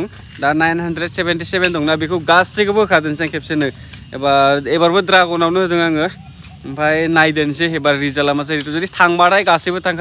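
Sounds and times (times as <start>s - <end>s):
man talking: 0.0s - 10.0s.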